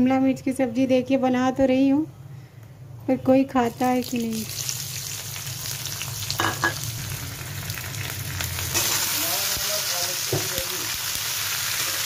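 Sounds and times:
vegetables sizzling in hot oil: 3.6 - 12.0.

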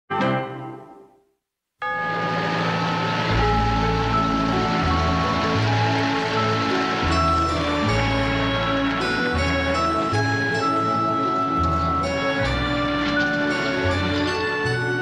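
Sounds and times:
instrumental tv theme music: 0.1 - 15.0.

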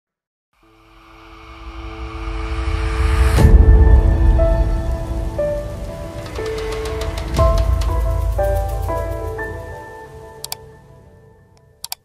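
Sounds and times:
deep bass rumble: 1.6 - 9.4.

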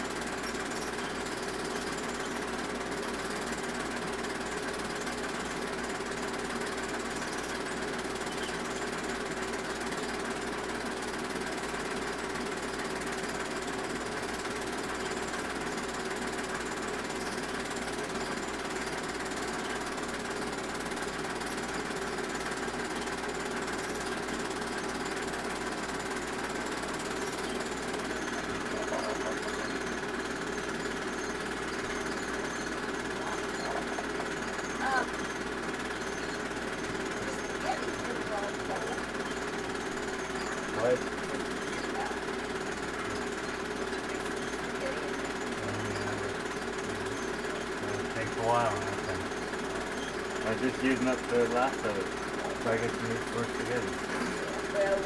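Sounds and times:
film projector clatter: 0.0 - 55.0.

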